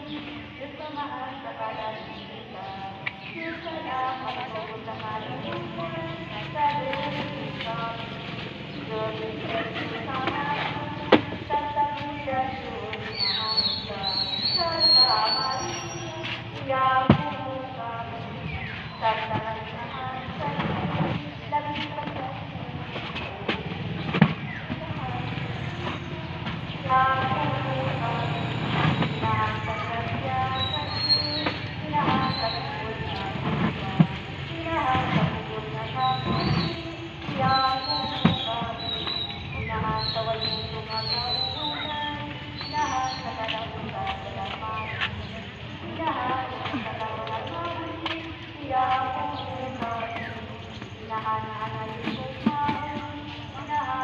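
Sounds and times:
people talking: 0.0s - 54.0s.

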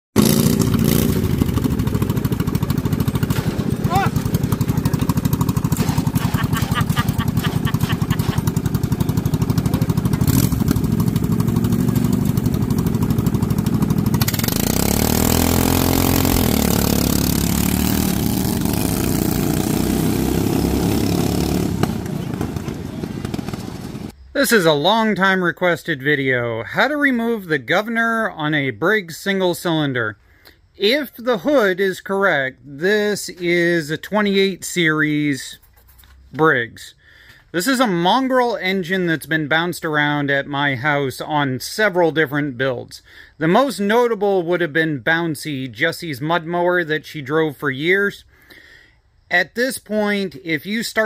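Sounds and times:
riding lawn mower engine revving: 0.2s - 24.2s.

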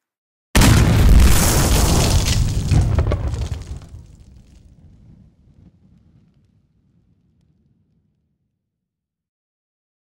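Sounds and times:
explosion with deep rumble: 0.6s - 7.9s.

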